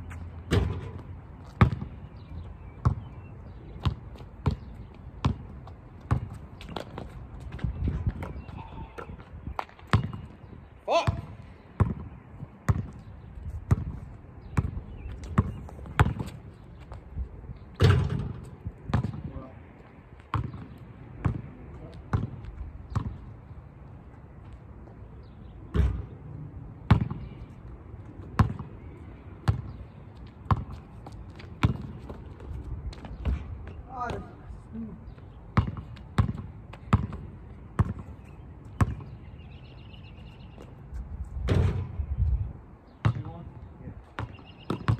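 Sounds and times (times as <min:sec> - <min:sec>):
basketball bouncing on asphalt: 0:00.0 - 0:44.9.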